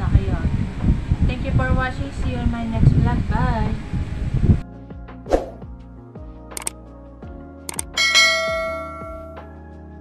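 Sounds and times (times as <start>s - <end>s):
background music with a beat: 4.6s - 10.0s
quick double clicks: 6.6s - 6.8s, 7.7s - 8.0s
notification bell ding: 8.0s - 9.4s.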